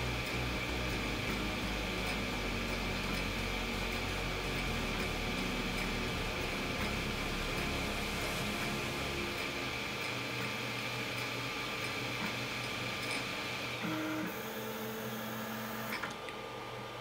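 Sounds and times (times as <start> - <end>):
stepper motor whine: 0.0 - 11.7
fan hum: 0.0 - 13.8.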